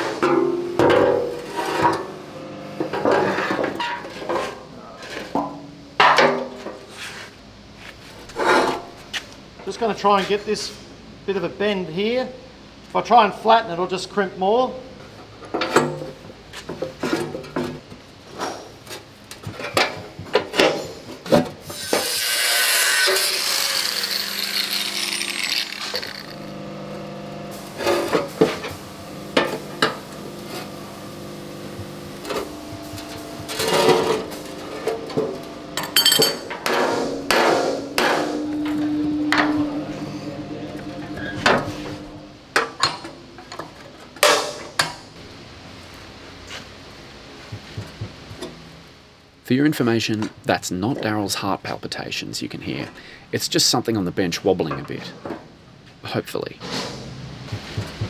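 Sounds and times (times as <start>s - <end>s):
hissing noise: 25.7s - 42.6s
hammer blows on sheet metal: 32.7s - 42.2s.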